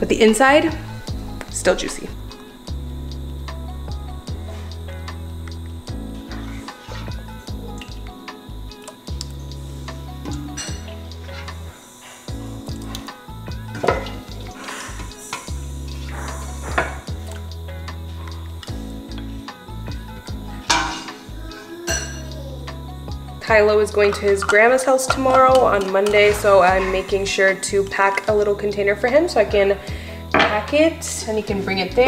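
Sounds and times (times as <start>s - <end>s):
background music: 0.0s - 32.0s.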